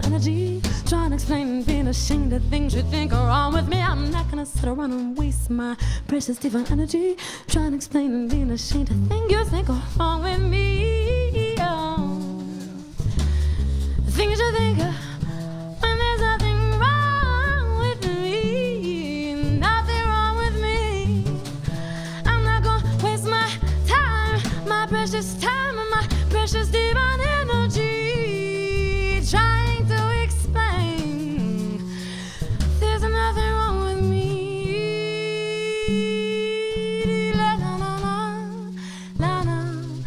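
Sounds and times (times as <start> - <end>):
woman singing wordless melody: 0.0 - 13.0, 13.6 - 40.0
upright bass low notes: 0.0 - 40.0.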